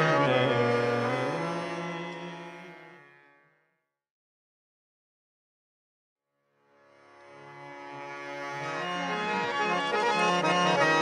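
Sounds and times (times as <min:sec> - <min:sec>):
devotional chant music: 0:00.0 - 0:03.2.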